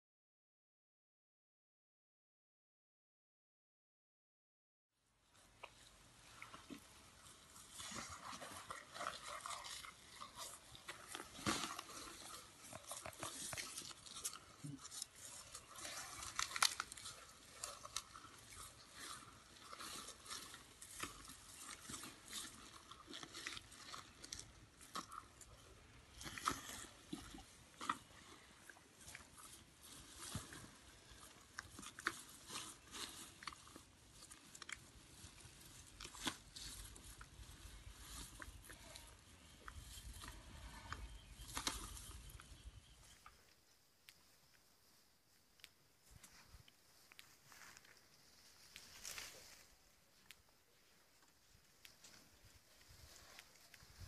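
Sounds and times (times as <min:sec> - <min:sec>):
elephant crunching and chewing hay: 0:05.4 - 0:43.5, 0:45.6 - 0:54.0.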